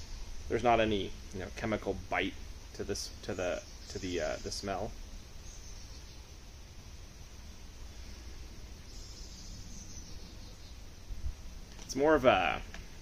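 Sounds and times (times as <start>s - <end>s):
faint hiss: 0.0s - 13.0s.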